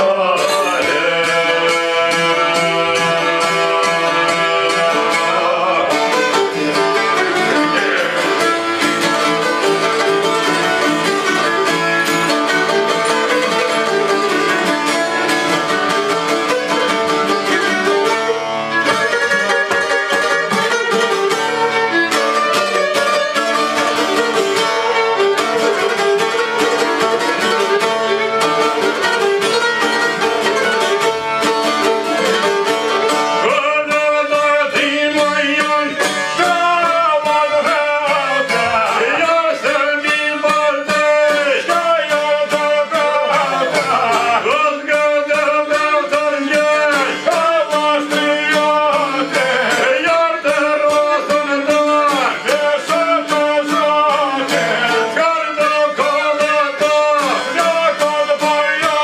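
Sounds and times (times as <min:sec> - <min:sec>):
violin bowing melody: 0:00.0 - 0:52.5
plucked lutes: 0:00.0 - 0:59.0.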